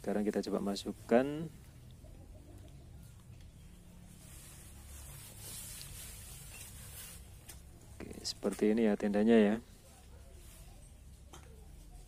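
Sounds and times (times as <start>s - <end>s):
tent fabric rustling: 4.0s - 7.6s.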